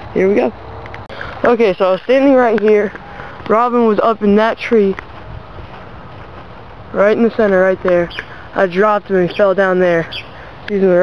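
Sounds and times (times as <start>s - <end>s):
wind noise on microphone: 0.8s - 10.6s.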